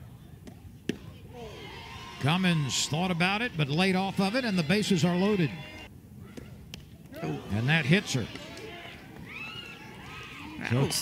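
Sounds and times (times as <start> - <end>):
faint ballpark ambience: 0.0 - 11.0.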